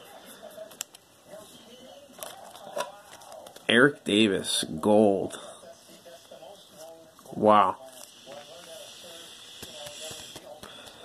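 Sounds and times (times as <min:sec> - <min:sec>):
cards and plastic sleeve handled: 0:02.1 - 0:03.9.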